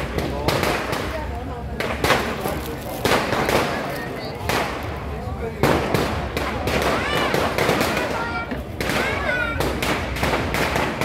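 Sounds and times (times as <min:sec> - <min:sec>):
firecrackers crackling: 0:00.0 - 0:11.0
crowd shouting: 0:06.6 - 0:09.9.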